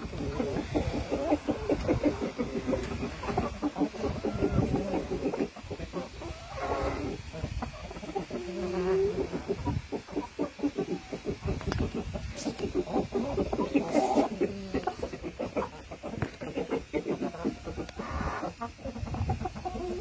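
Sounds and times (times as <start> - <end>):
chickens clucking: 0.0 - 20.0.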